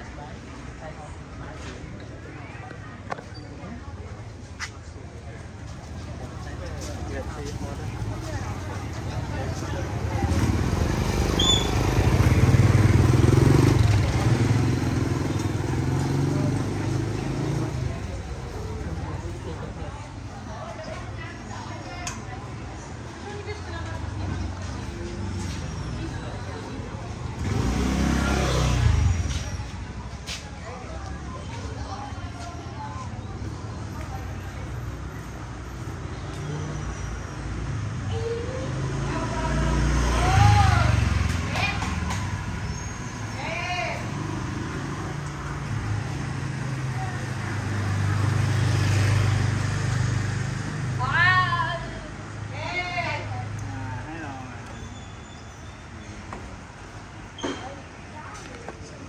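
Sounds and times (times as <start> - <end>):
low traffic hum: 0.0 - 59.0
motor scooter passing: 6.5 - 19.4, 23.7 - 30.0, 37.6 - 54.6.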